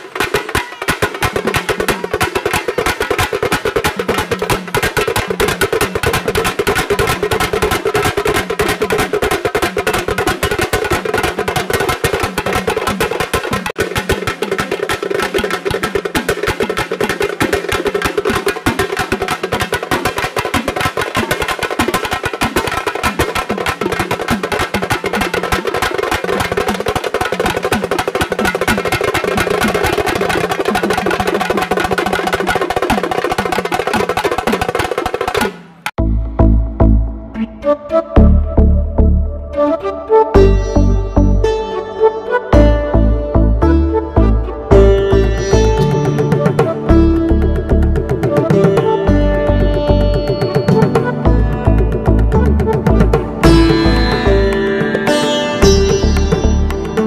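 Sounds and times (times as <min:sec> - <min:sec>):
folk drum ensemble playing: 0:00.0 - 0:36.0, 0:43.7 - 0:57.0.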